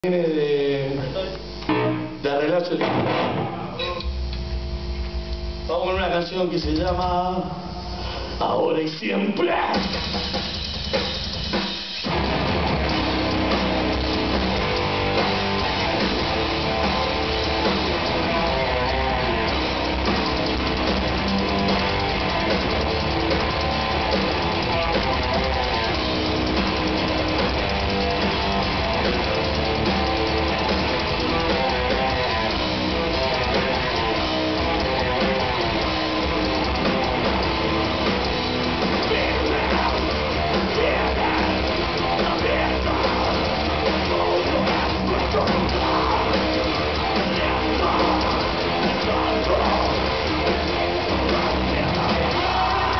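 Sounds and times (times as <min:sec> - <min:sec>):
heavy metal band playing live: 0:01.5 - 0:04.9, 0:06.0 - 0:52.9.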